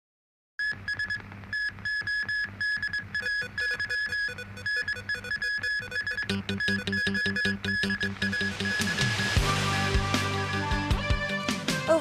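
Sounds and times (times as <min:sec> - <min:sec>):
pulsing synthesizer tone: 0:03.2 - 0:09.6
electronic news theme music: 0:03.4 - 0:12.0
pulsing bass: 0:06.3 - 0:12.0.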